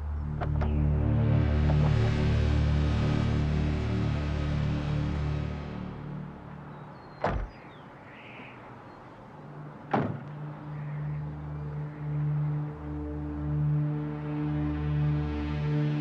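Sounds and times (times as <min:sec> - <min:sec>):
low film score drone: 0:00.0 - 0:16.0.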